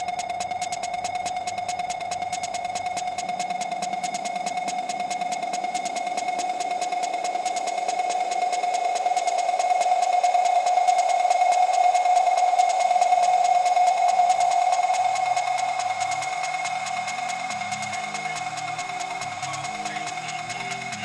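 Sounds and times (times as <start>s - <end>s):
rapid electronic ticking: 0.0s - 21.0s.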